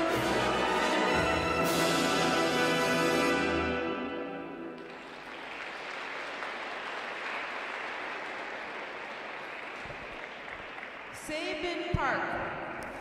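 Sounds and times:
audience applauding: 0:04.8 - 0:11.2.

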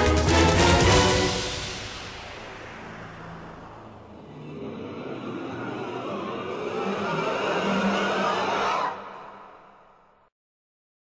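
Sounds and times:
rushing noisy swell: 0:00.8 - 0:10.3.

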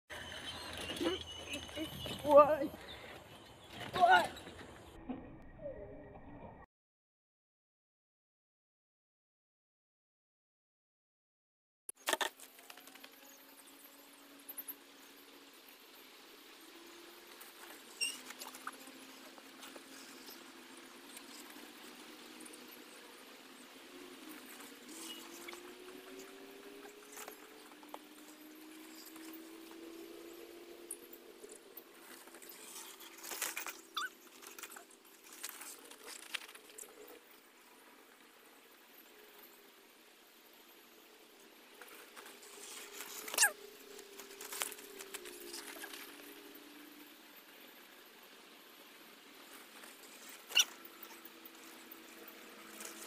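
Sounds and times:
bicycle brake squealing: 0:18.0 - 0:18.3, 0:33.9 - 0:34.2, 0:43.3 - 0:43.6, 0:50.5 - 0:50.7.

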